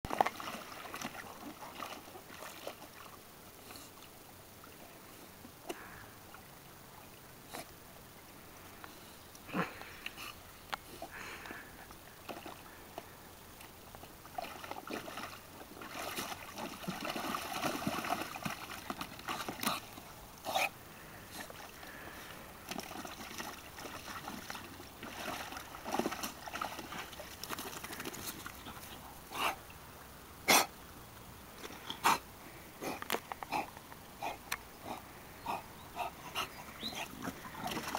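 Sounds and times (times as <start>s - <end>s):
dog splashing water: 0.1s - 3.2s, 14.2s - 20.1s, 21.4s - 29.6s, 34.9s - 37.9s.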